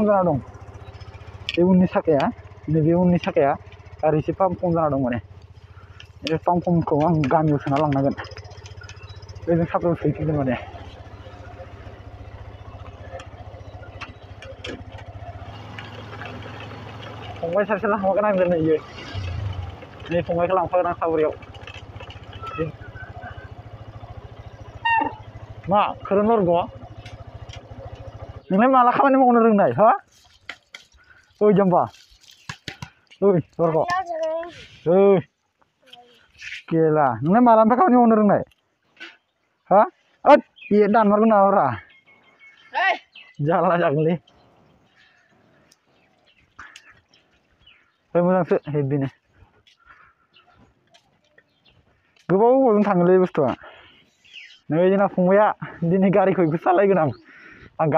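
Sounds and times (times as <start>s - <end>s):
small motorbike engine puttering: 0.0s - 34.6s
faint outdoor background: 0.0s - 57.9s
voices talking: 0.0s - 57.9s
distant animal calls: 7.5s - 17.4s, 21.2s - 28.6s, 49.2s - 52.3s, 55.6s - 57.9s.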